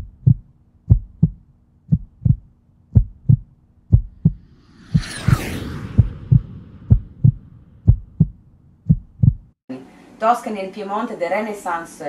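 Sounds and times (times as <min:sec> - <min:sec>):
heartbeat double thumps: 0:00.0 - 0:05.1, 0:05.9 - 0:09.6.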